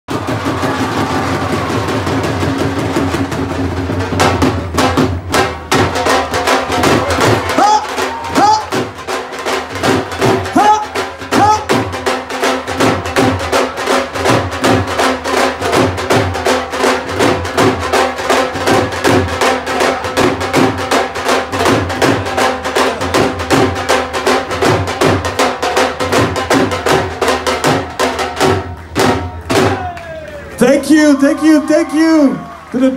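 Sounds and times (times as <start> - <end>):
barrel drums in fast rhythm: 0.1 - 29.8.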